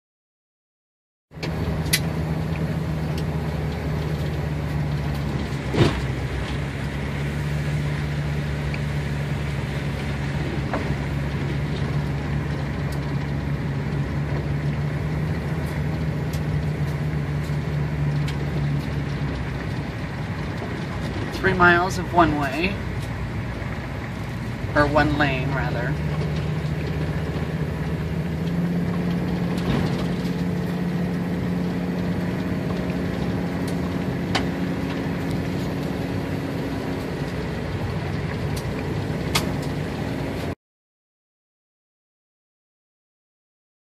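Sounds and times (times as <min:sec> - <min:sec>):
engine and tyres on gravel: 0:01.3 - 0:40.6.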